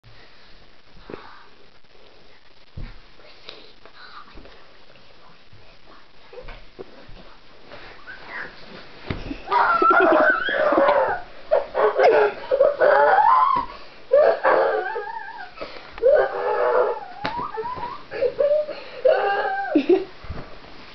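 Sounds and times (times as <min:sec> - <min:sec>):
faint rustling of bedding: 0:00.1 - 0:20.9
person whining and moaning: 0:09.4 - 0:20.1.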